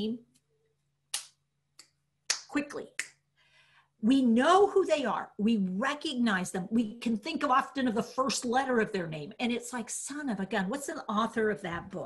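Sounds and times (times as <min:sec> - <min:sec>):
finger snaps: 0:01.1 - 0:03.2.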